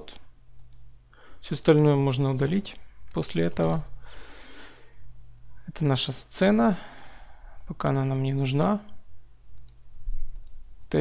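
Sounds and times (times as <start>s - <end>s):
low steady hum: 0.0s - 11.0s
computer mouse clicks: 0.6s - 0.9s, 9.6s - 11.0s.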